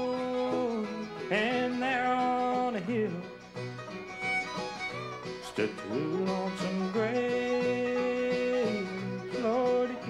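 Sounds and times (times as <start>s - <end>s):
acoustic guitar: 0.0s - 10.0s
banjo: 0.0s - 10.0s
fiddle: 0.0s - 10.0s
upright bass: 0.0s - 10.0s.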